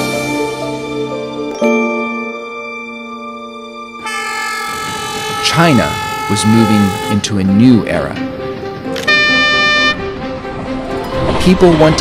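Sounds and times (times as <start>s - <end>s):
background music: 0.0s - 12.0s
locomotive horn blast: 4.0s - 7.8s, 9.0s - 10.2s.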